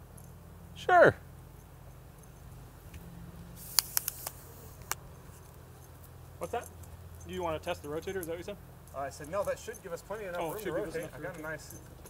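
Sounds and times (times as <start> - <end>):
steady low hum: 0.0 - 12.0
sharp clicks of cable fittings: 3.7 - 5.6.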